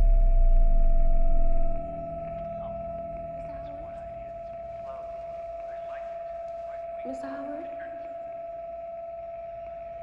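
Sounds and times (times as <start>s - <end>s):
faint rising sounds: 0.0s - 7.0s
high-pitched ringing tone: 0.0s - 10.0s.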